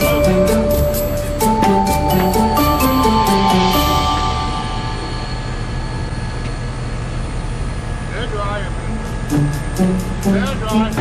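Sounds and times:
background music: 0.0s - 6.4s, 8.6s - 11.0s.

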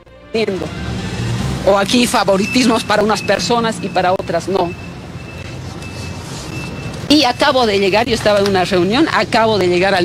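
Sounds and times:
faint high-pitched beeps: 2.4s - 7.5s.

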